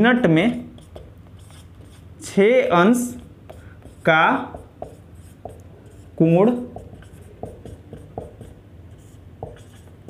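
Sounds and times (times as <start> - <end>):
marker pen scratching on whiteboard: 0.0 - 10.0.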